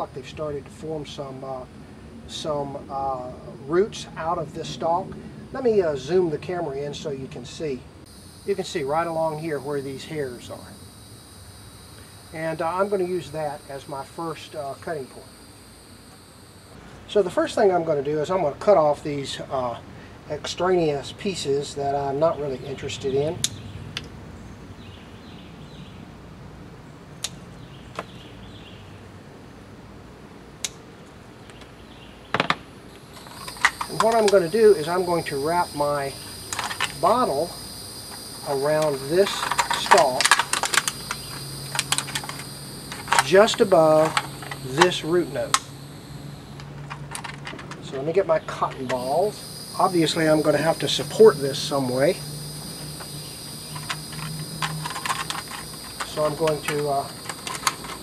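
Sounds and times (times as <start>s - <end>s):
crickets chirping: 0.0s - 58.0s.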